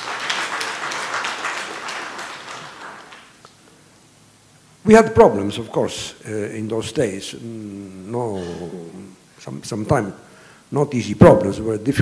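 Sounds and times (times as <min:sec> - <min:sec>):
audience applause: 0:00.0 - 0:03.5.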